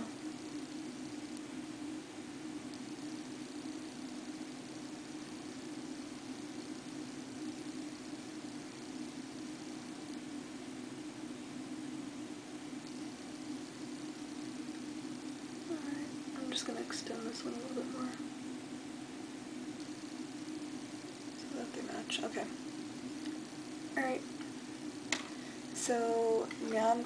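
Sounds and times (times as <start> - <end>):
even hiss: 0.0 - 27.0
steady low hum: 0.0 - 27.0.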